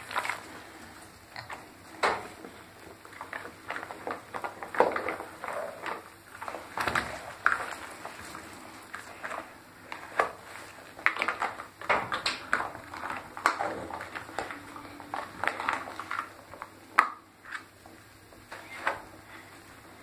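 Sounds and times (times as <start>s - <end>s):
bath water sloshing: 0.0s - 17.0s.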